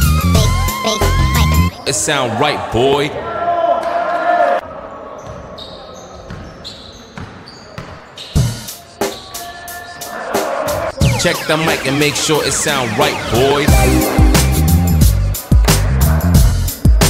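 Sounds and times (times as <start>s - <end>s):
hip-hop backing track: 0.0s - 1.7s, 8.4s - 17.0s
sneaker squeaks: 5.1s - 10.1s
basketball bouncing on wooden court: 5.2s - 8.0s.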